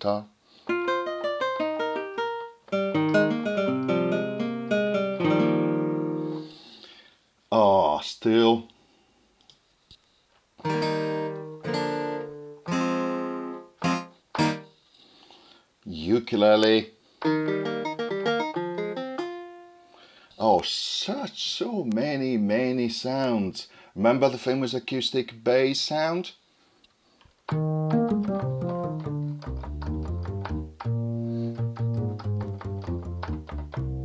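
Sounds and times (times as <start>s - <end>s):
guitar chord ringing: 0.7s - 6.4s, 10.7s - 14.7s, 17.2s - 20.0s, 27.5s - 34.0s
nylon-string guitar notes: 0.7s - 6.4s, 10.6s - 14.7s, 17.2s - 20.0s, 27.5s - 34.0s.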